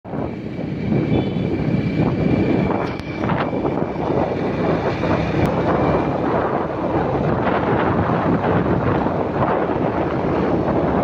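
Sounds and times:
vehicle driving on road: 0.1 - 11.0
wind rumbling on microphone: 0.1 - 11.0.

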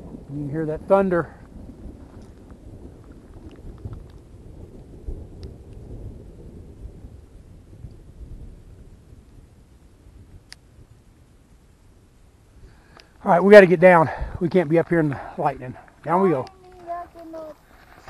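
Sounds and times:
low rumble of thunder: 0.0 - 16.0.

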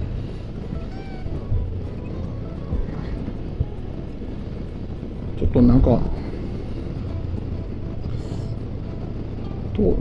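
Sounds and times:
motorcycle engine running steadily: 0.0 - 10.0
road and wind rush: 0.0 - 10.0.

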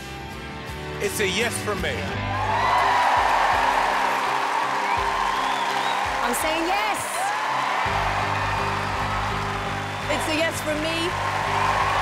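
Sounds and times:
crowd cheering and clapping: 2.0 - 12.0
show music with low chords: 7.8 - 12.0.

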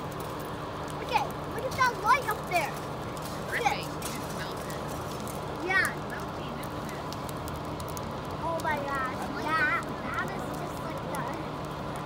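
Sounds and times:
fire crackling and popping: 0.0 - 12.0
fire engines idling: 0.0 - 12.0.

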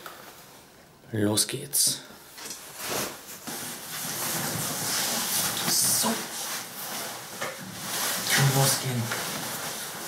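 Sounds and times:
fabric rustling: 2.4 - 10.0.

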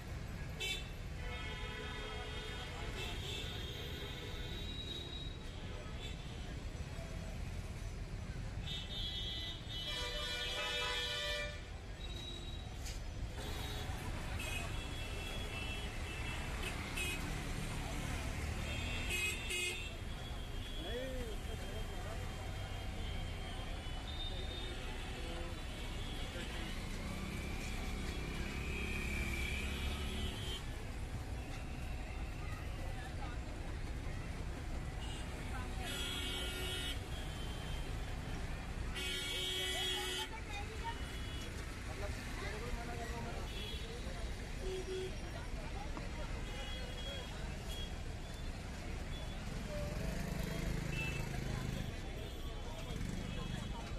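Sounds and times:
traffic engines rumbling: 0.0 - 53.9.

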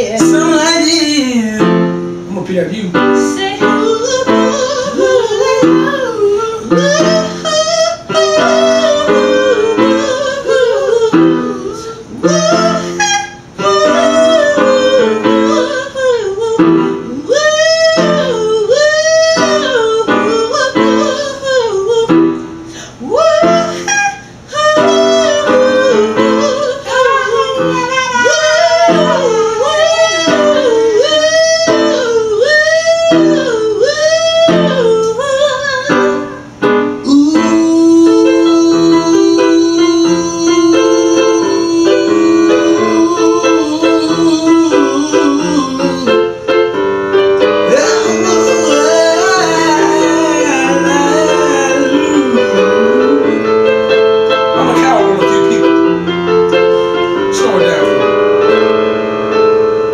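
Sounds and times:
keyboard backing: 0.0 - 59.9.

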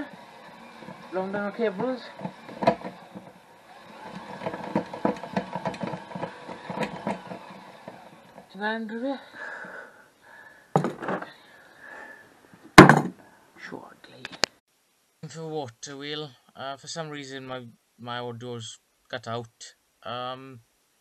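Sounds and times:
crank clicking rattle: 0.0 - 8.5
sharp knocks: 1.8 - 3.4, 10.8 - 11.3, 12.8 - 13.2.

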